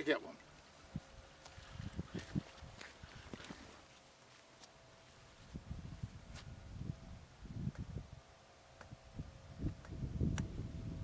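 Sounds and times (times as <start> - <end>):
wind buffeting microphone: 0.8 - 3.7, 5.4 - 11.0.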